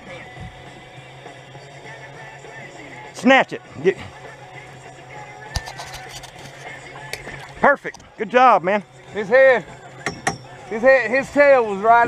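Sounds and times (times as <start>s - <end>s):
steady low hum: 0.0s - 10.9s
faint rock music from radio: 0.0s - 12.0s.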